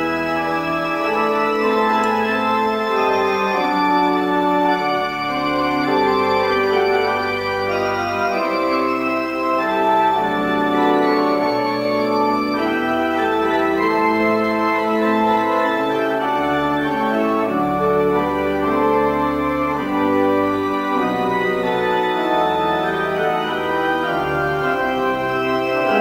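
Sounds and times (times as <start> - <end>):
organ playing slow chords: 0.0 - 26.0.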